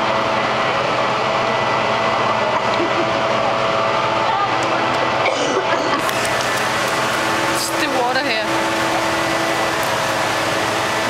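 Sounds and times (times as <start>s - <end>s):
machine hum: 0.0s - 11.0s
murmur of voices: 2.2s - 6.1s.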